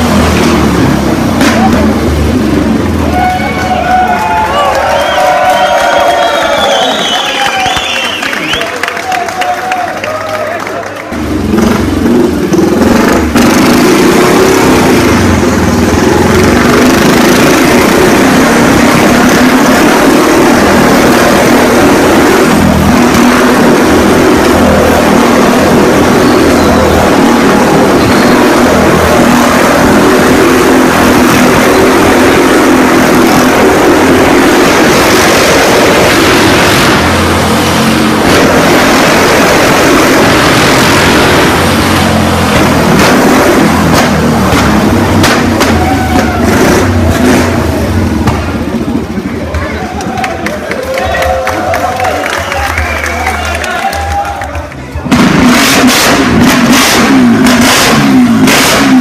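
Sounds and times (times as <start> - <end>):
motorcycle engine revving: 0.0 - 3.5, 11.1 - 50.6, 55.0 - 59.0.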